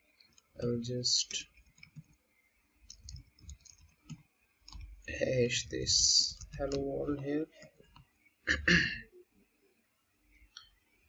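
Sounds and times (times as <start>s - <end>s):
keyboard typing clicks: 1.5s - 2.2s, 2.8s - 5.0s.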